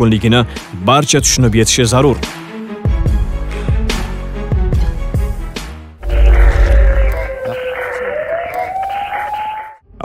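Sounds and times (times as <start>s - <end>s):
noisy musical bed: 6.0s - 9.8s
siren-like wail rising in pitch: 6.0s - 9.8s.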